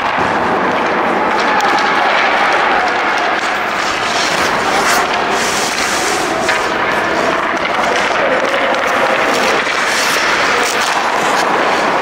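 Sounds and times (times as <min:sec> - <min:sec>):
loud rushing noise: 0:00.0 - 0:12.0
skate blades scraping ice: 0:00.0 - 0:12.0.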